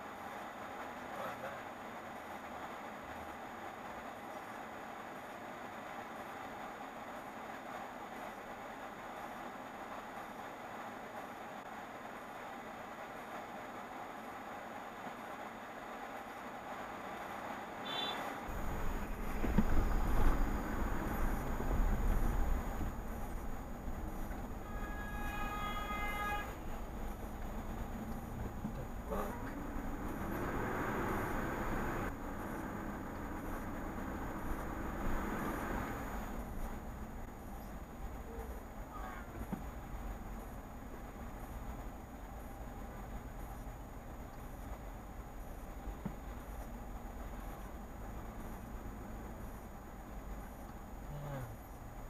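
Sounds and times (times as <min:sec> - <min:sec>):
car road noise rumble: 0:18.4 - 0:52.0.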